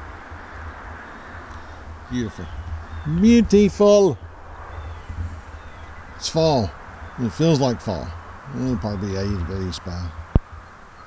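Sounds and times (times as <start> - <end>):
pickup truck engine rumbling: 0.0 - 11.0.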